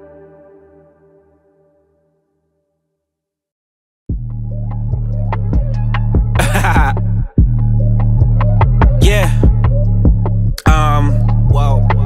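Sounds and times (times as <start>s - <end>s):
hip-hop beat with deep bass: 4.1s - 12.0s.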